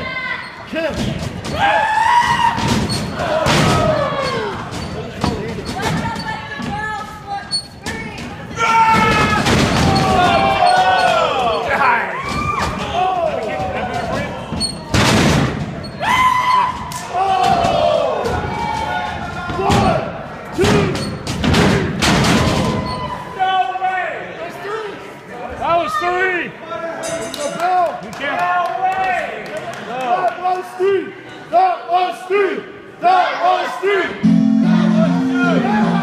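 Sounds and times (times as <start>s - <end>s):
people shouting: 1.5s - 4.7s, 8.5s - 14.5s, 16.0s - 20.9s, 33.0s - 36.0s.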